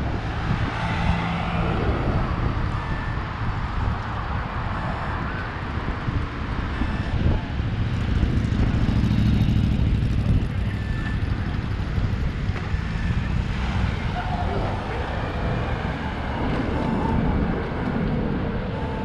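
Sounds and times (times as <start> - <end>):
traffic hum: 0.0 - 19.0.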